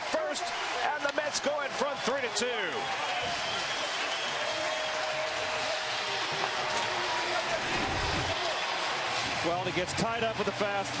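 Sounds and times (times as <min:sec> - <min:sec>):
crowd cheering and applauding: 0:00.0 - 0:11.0.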